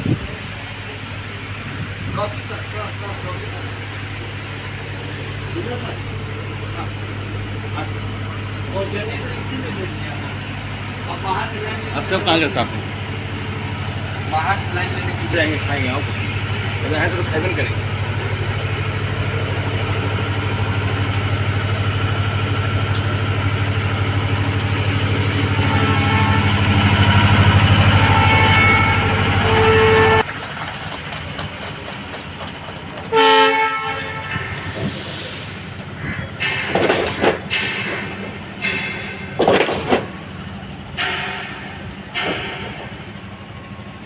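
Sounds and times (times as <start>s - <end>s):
engine idling: 0.1s - 44.0s
machinery hum: 0.2s - 30.4s.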